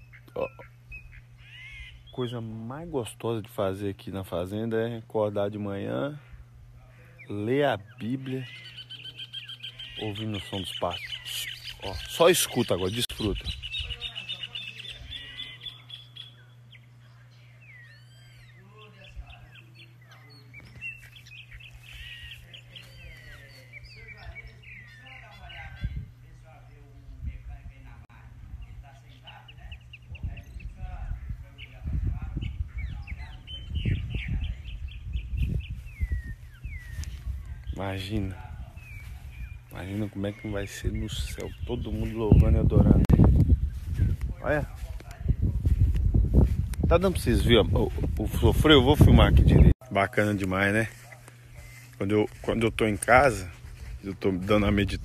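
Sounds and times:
steady low hum: 0.0s - 55.0s
wild birds calling: 0.0s - 55.0s.

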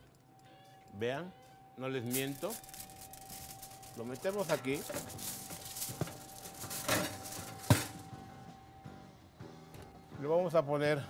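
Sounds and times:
faint background music: 0.0s - 11.0s
baking dish scraping: 5.9s - 8.0s.

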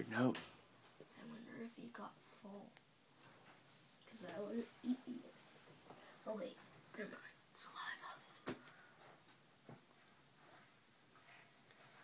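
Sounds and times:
faint whispering: 6.2s - 8.4s.

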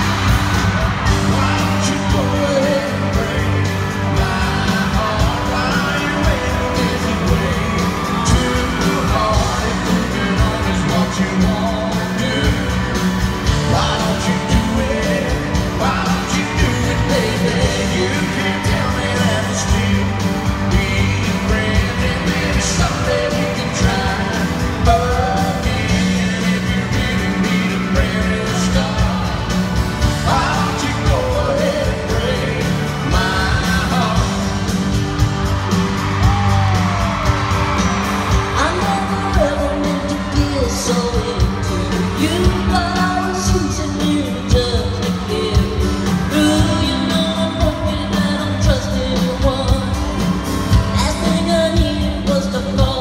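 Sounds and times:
acoustic guitar: 0.0s - 53.0s
live country-pop band playing: 0.0s - 53.0s
steady drum beat: 0.0s - 53.0s.

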